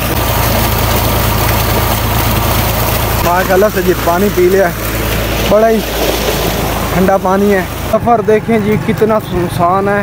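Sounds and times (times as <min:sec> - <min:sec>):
water gushing from pipe: 0:00.0 - 0:09.8
pump humming: 0:00.0 - 0:10.0.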